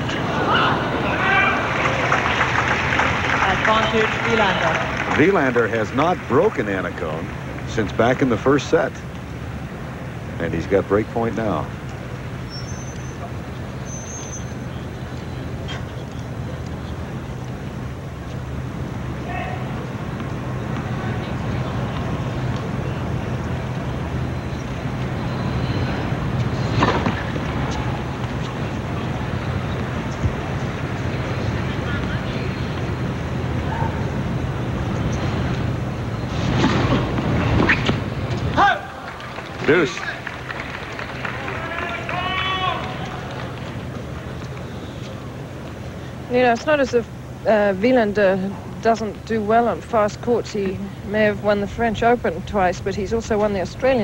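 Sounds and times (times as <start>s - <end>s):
steady low hum: 0.0s - 54.0s
tennis crowd murmur: 0.0s - 54.0s
racket hitting ball: 26.7s - 27.8s.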